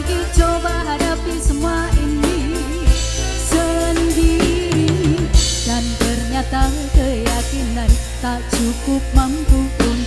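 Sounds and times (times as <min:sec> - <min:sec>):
dangdut band music: 0:00.0 - 0:10.0
drum and cymbal hits: 0:00.0 - 0:10.0
steady bass: 0:00.0 - 0:10.0.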